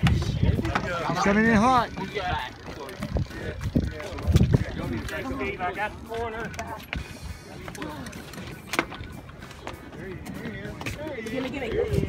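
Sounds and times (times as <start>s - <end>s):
indistinct talk of people: 0.0s - 12.0s.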